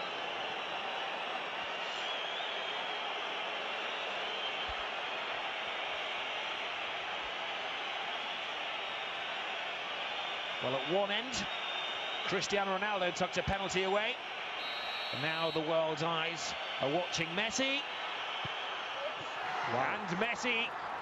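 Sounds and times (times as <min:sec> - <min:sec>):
stadium crowd noise: 0:00.0 - 0:21.0.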